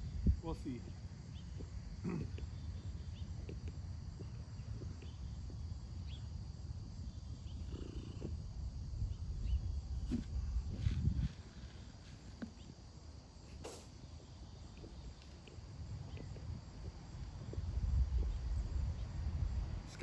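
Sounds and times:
wind buffeting microphone: 0.0 - 0.8, 6.8 - 12.0, 15.7 - 20.0.

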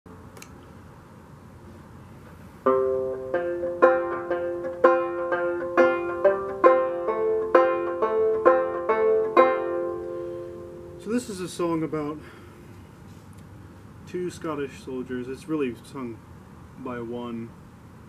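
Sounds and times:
banjo plucked notes: 2.7 - 11.0.

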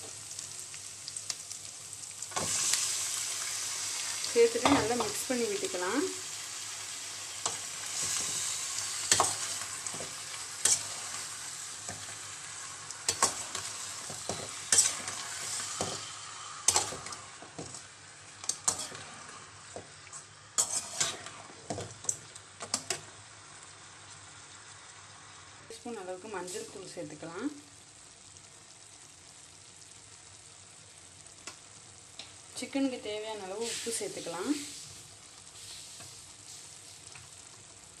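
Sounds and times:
chicken sizzling in pan: 0.0 - 38.0
metal spoon scraping pan: 9.0 - 11.2, 13.1 - 17.8, 18.4 - 19.4, 20.1 - 21.8.

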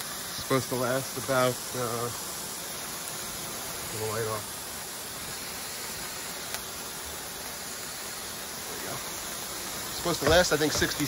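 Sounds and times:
fireworks hissing: 0.0 - 11.0.

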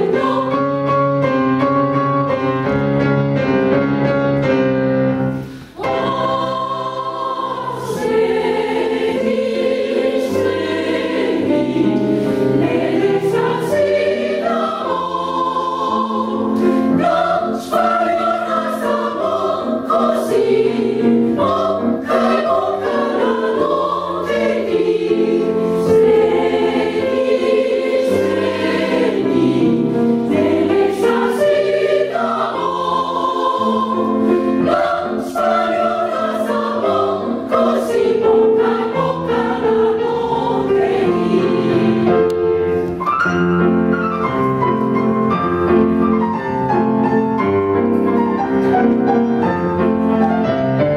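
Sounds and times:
women's choir singing: 0.0 - 1.1, 5.2 - 42.9.

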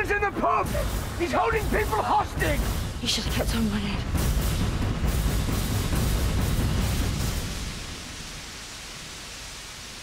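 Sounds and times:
heavy rain falling: 0.0 - 10.0.

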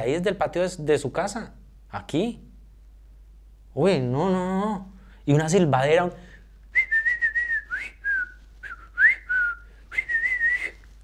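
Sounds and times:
man whistling: 6.7 - 11.0.

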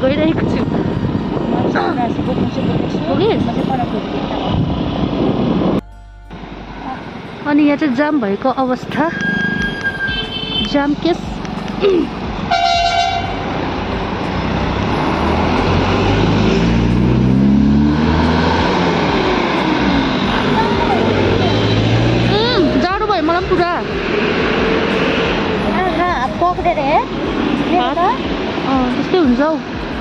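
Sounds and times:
street traffic: 0.0 - 30.0
wind and road noise: 0.0 - 30.0
voices: 6.8 - 10.0, 10.6 - 12.3, 19.4 - 24.8, 25.5 - 30.0
vehicle engine revving: 13.2 - 30.0.

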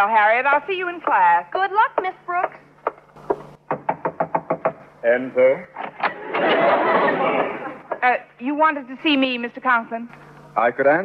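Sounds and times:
knocking on a door: 3.4 - 4.8.

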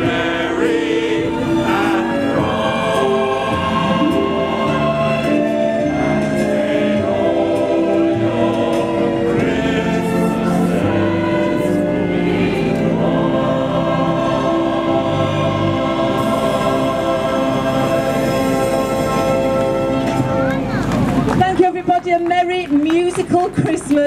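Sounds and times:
choir singing in harmony: 0.0 - 20.2.

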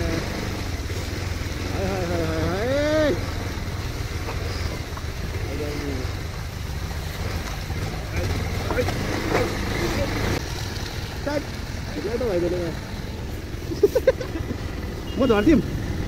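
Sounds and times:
motorcycle engine running: 0.0 - 16.0.

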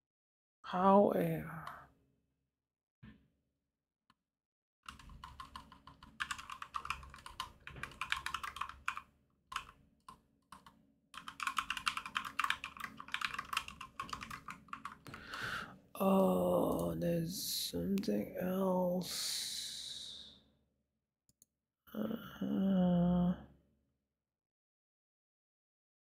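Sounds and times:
computer keyboard typing: 4.9 - 15.6.

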